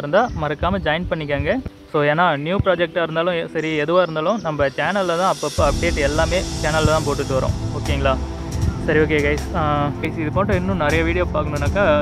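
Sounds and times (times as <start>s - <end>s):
person talking: 0.0s - 8.2s, 8.8s - 12.0s
background music with low beat: 0.0s - 12.0s.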